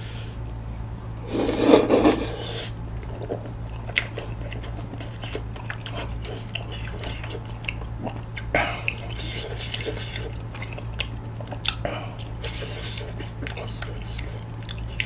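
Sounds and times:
loud rasping slurp: 0:01.3 - 0:02.8
wet chewing: 0:03.0 - 0:15.0.

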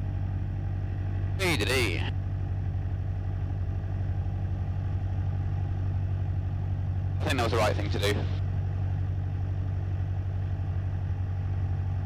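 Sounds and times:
propeller plane engine running: 0:00.0 - 0:12.0.

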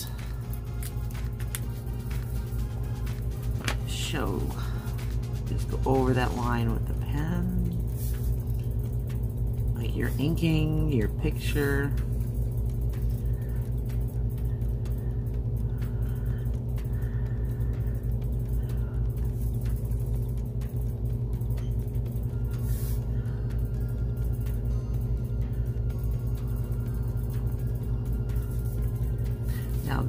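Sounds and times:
steady low hum: 0:00.0 - 0:30.0.

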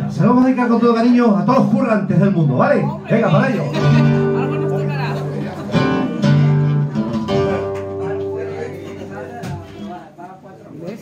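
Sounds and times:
acoustic guitar chords strummed: 0:03.1 - 0:09.9.

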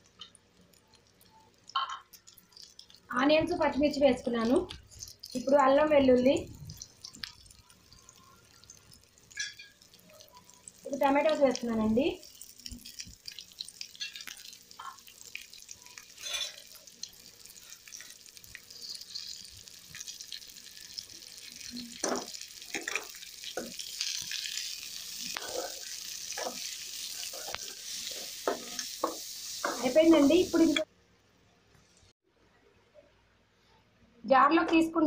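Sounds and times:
vegetables frying in oil: 0:00.0 - 0:30.9.

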